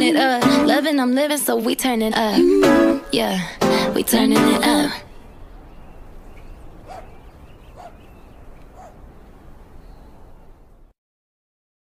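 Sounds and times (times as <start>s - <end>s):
low background noise: 0.0s - 10.9s.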